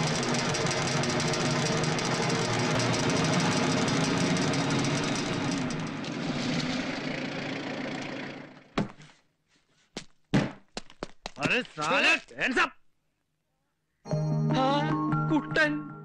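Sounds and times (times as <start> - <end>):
car engine running: 0.0 - 8.8.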